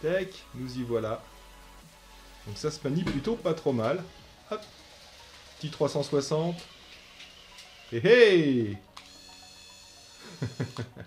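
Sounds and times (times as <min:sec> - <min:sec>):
man chuckling: 0:10.2 - 0:11.0.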